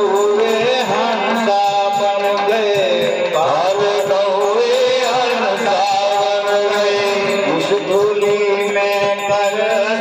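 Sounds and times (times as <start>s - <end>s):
light percussion beat: 0.0s - 10.0s
man singing into a microphone: 0.0s - 10.0s.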